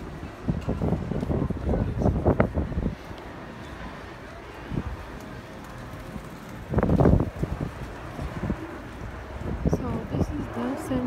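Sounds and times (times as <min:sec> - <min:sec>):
outdoor street noise: 0:00.0 - 0:11.0
wind buffeting microphone: 0:00.0 - 0:11.0.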